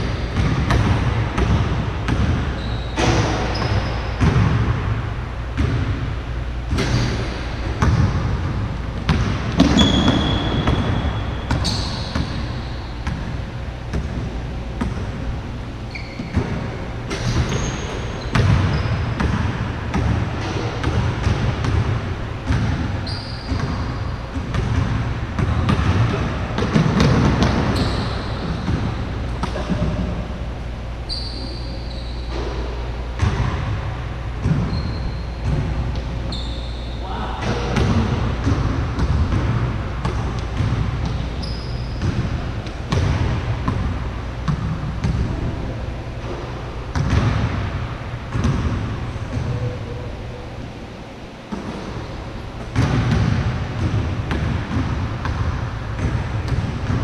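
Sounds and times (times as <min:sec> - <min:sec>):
basketball bouncing on hardwood floor: 0:00.0 - 0:04.9, 0:05.6 - 0:06.0, 0:06.7 - 0:15.1, 0:15.9 - 0:30.1, 0:33.2 - 0:33.8, 0:34.4 - 0:36.4, 0:37.8 - 0:45.4, 0:46.9 - 0:47.6, 0:48.3 - 0:49.7, 0:52.6 - 0:57.0
sneakers squeaking: 0:00.0 - 0:57.0.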